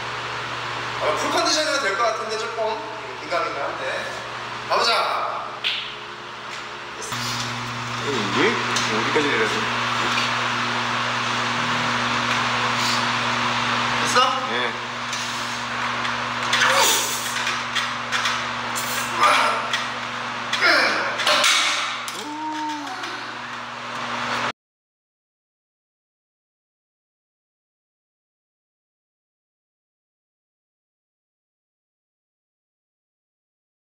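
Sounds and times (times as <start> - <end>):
steady hum: 0.0 - 24.5
man straining and grunting: 20.5 - 21.2, 22.1 - 23.4.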